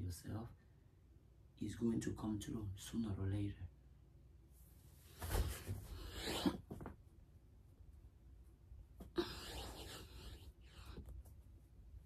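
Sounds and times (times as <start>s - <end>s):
clothing rustling: 4.6s - 7.0s.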